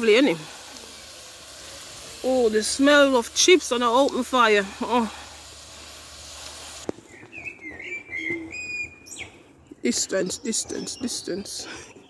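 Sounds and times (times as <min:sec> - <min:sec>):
chips sizzling in oil: 0:00.0 - 0:06.9
bird singing whistled notes: 0:07.0 - 0:11.5.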